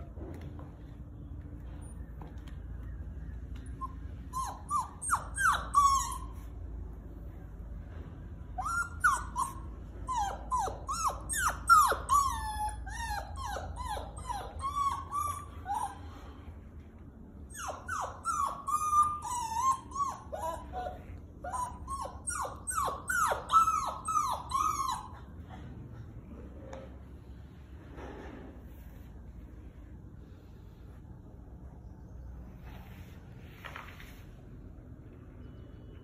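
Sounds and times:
puppy whining and whimpering: 0:01.7 - 0:07.1, 0:08.4 - 0:16.6, 0:17.4 - 0:26.3.

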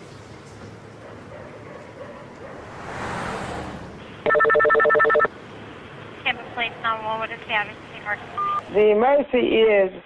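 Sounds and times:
soft whooshing: 0:02.5 - 0:04.2
telephone warbling ring: 0:04.3 - 0:05.3.

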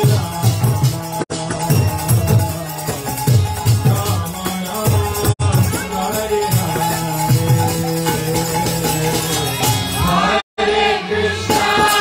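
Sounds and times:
harmonium: 0:00.0 - 0:12.0
voices singing a devotional chant: 0:00.0 - 0:12.0.

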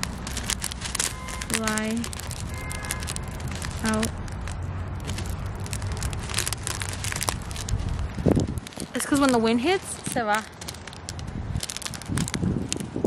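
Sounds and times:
foam beads pouring: 0:00.0 - 0:12.8
plastic bag crinkling: 0:00.0 - 0:13.0
wind rumble on microphone: 0:00.0 - 0:13.0.

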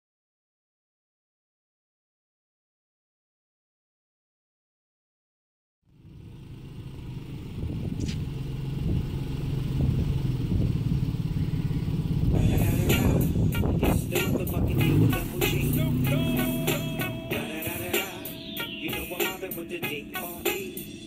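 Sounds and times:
car engine running: 0:05.9 - 0:21.0
music with rattling percussion: 0:12.4 - 0:21.0.

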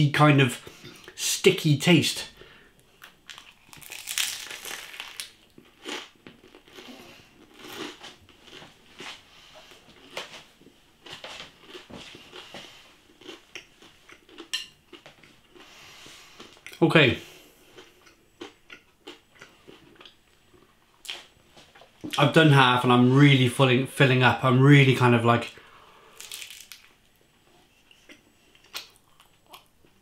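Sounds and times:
pizza crust crunching while chewing: 0:03.0 - 0:09.2, 0:11.0 - 0:15.1, 0:26.2 - 0:26.9.

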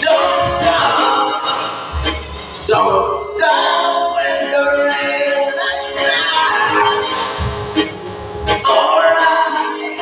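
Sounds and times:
backing music: 0:00.0 - 0:10.0
man singing sustained notes: 0:02.6 - 0:07.5, 0:08.6 - 0:10.0.

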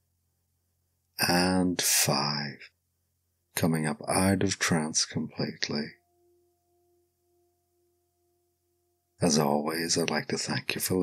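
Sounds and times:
faint steady two-pitch tone: 0:00.0 - 0:11.0.

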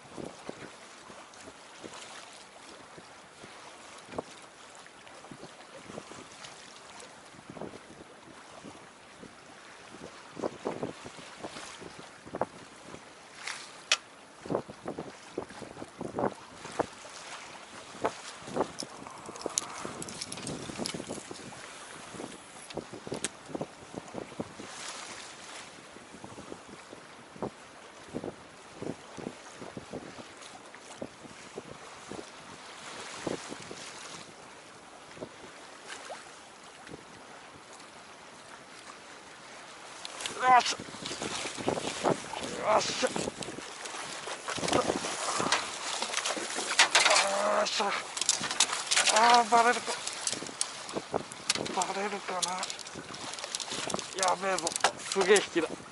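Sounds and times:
wind noise on microphone: 0:00.0 - 0:02.0, 0:05.2 - 0:06.4, 0:07.3 - 0:13.1, 0:14.4 - 0:34.4, 0:40.1 - 0:55.9
waves lapping against boat hull: 0:00.0 - 0:55.9.

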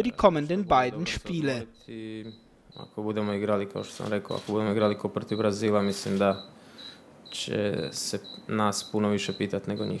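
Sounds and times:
man speaking into a microphone: 0:07.3 - 0:10.0.

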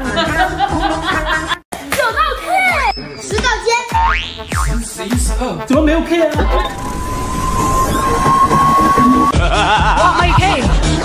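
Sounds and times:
whistle-like tone rising in pitch: 0:06.6 - 0:09.4.

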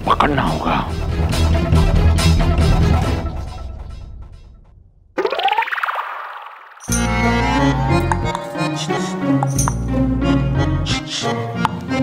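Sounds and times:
background music score: 0:06.9 - 0:12.0.

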